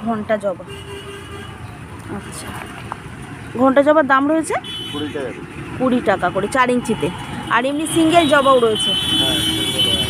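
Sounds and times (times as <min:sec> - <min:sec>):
road traffic: 0:00.0 - 0:10.0
people talking: 0:03.6 - 0:10.0.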